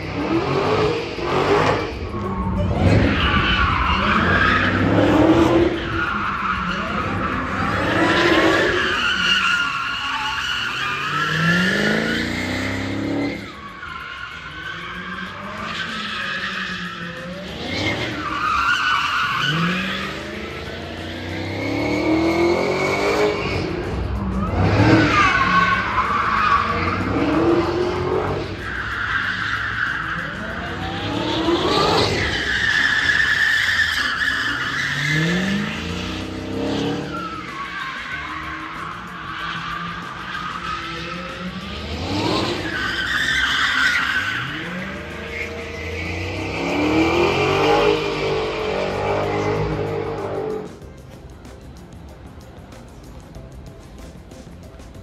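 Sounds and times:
tyres squealing: 0.0s - 50.8s
car engine revving: 0.0s - 53.2s.

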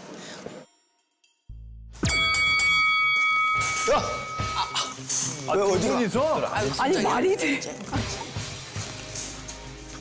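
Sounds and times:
boxing ring bell ringing: 2.0s - 5.0s.

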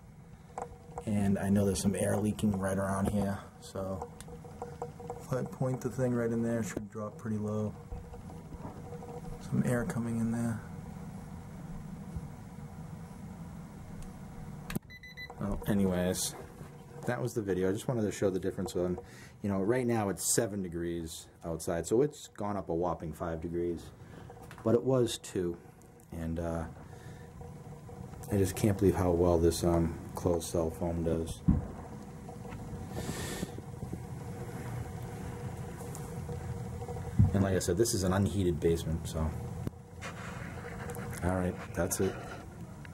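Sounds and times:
furnace humming: 0.0s - 42.9s
rustling hiss: 26.4s - 42.9s.

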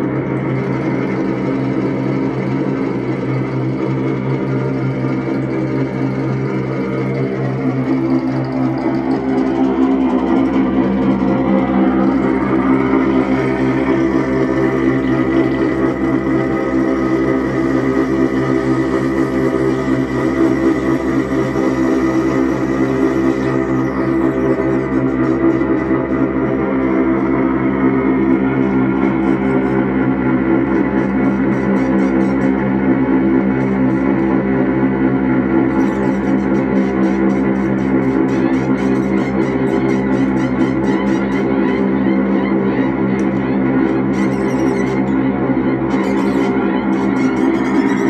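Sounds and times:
electronic drone music: 0.0s - 48.0s.

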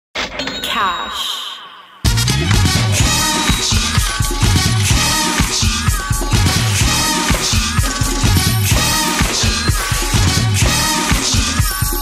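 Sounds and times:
cash register ringing: 0.2s - 1.2s.

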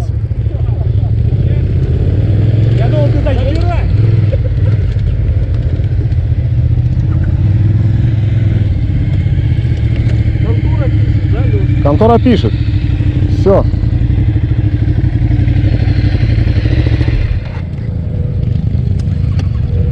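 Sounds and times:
motorcycle engines idling: 0.0s - 19.9s.

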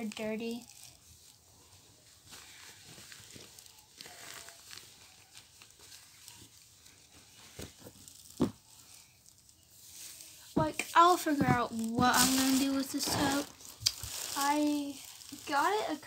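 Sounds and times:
clothes rustling: 0.0s - 16.0s
plastic bag crinkling: 0.0s - 16.0s.

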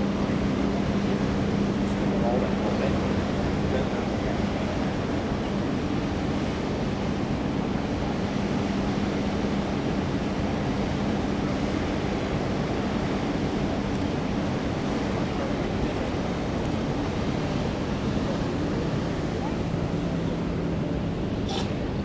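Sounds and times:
low machinery hum: 0.0s - 22.0s.

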